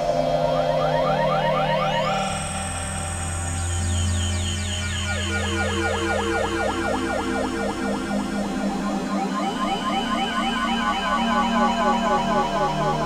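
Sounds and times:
low synth drone: 0.0s - 13.0s
glitchy synthesizer pitch glides: 3.8s - 13.0s.

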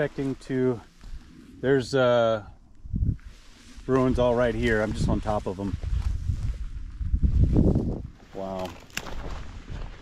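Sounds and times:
walking through dry brush: 0.0s - 2.0s, 2.8s - 10.0s.

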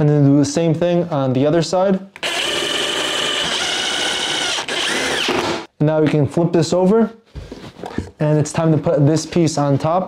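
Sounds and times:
power drill driving screws: 2.2s - 5.7s.

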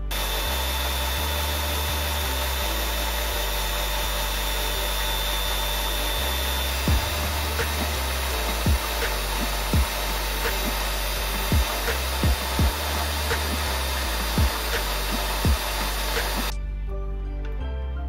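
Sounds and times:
rotary tool whining: 0.0s - 16.6s.

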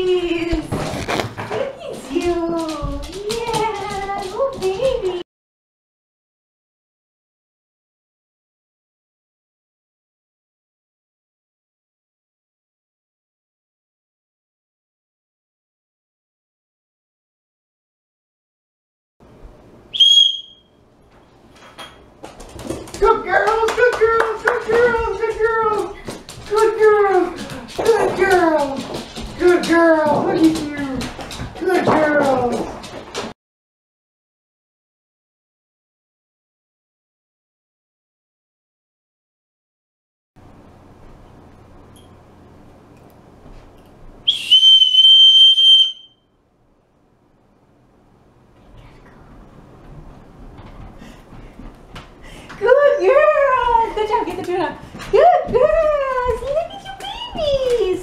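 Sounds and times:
high-pitched whistle blast: 20.0s - 20.7s, 44.3s - 46.3s.

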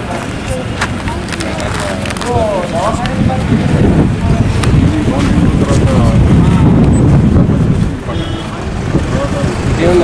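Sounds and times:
men talking: 0.0s - 10.0s
steady low rumble: 0.0s - 10.0s.

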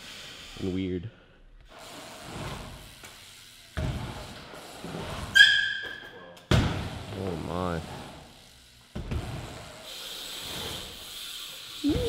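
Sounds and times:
bike tyres rolling on concrete: 1.7s - 12.0s.

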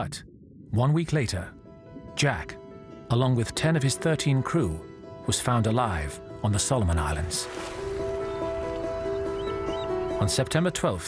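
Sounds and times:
soft sustained music notes: 0.7s - 11.0s.

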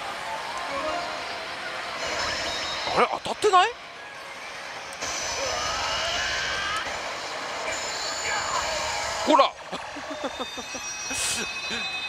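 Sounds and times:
faint rising tones: 0.2s - 3.2s.

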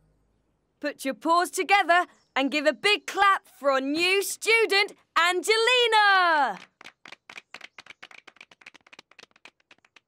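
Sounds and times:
people clapping quietly: 6.4s - 10.0s.

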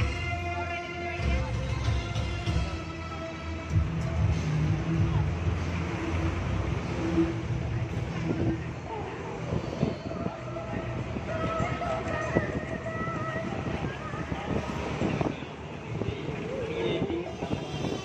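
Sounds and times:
buses passing close: 0.0s - 18.0s
busy street traffic: 0.0s - 18.0s
crowd voices: 0.0s - 18.0s.

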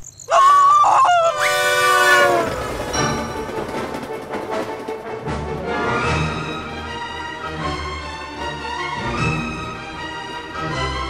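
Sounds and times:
steam locomotive whistle: 1.4s - 2.7s
music: 2.8s - 11.0s.

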